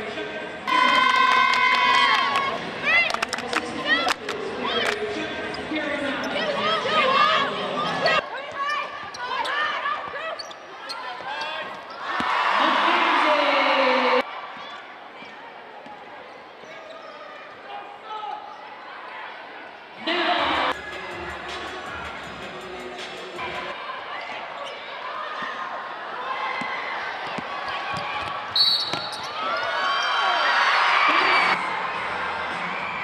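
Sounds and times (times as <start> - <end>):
crowd noise: 0.0 - 33.0
sneakers squeaking: 4.7 - 12.4, 14.5 - 17.6, 24.1 - 25.6, 26.5 - 30.4.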